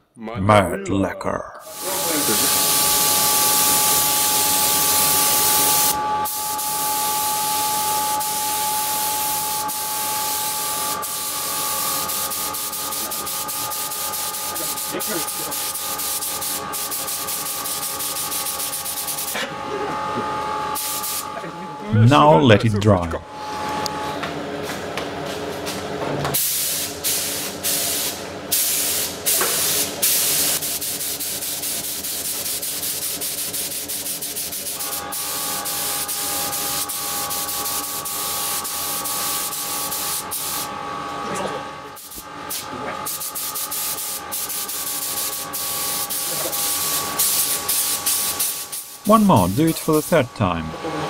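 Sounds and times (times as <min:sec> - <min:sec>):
steady machine hum: 0:00.3 - 0:25.6, 0:44.0 - 0:51.0
paint spray gun hissing: 0:01.6 - 0:06.6, 0:10.6 - 0:19.4, 0:20.8 - 0:21.2, 0:26.4 - 0:40.7, 0:43.1 - 0:49.0.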